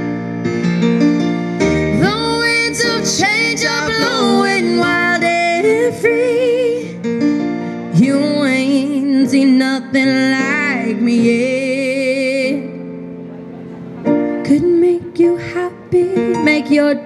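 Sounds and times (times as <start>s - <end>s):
keyboard piano chords: 0.0s - 17.0s
woman singing a slow ballad: 1.9s - 7.1s, 7.9s - 12.8s, 14.4s - 17.0s.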